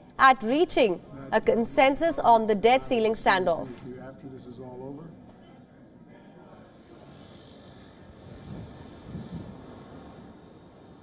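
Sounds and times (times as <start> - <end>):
faint street traffic: 0.0 - 11.0
steady hiss: 6.5 - 11.0.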